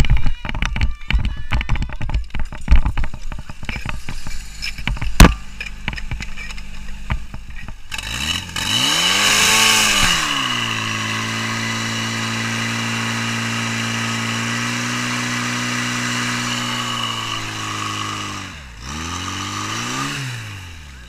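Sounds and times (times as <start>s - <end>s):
engine knocks: 0.0s - 21.0s
pump engine revving: 0.0s - 21.0s.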